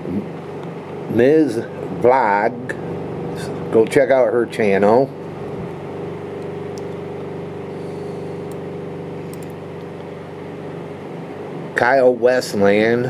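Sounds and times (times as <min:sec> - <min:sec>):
low mechanical hum: 0:00.0 - 0:13.0.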